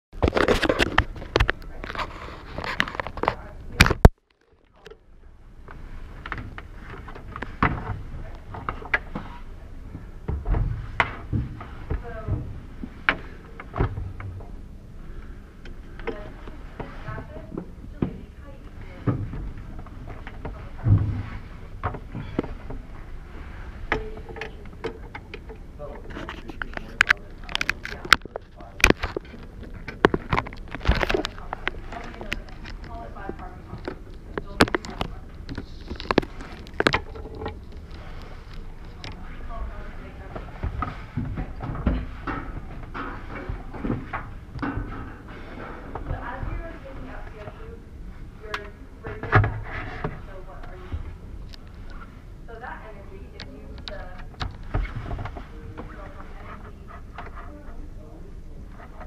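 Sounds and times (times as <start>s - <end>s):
knocks and thumps: 18.9s - 22.8s.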